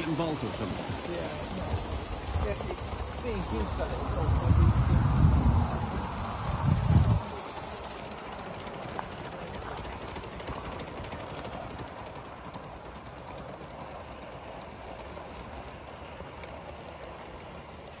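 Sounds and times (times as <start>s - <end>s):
model train running on track: 0.0s - 18.0s
wheels ticking on rails: 0.0s - 18.0s
wind rumble on microphone: 0.6s - 7.7s.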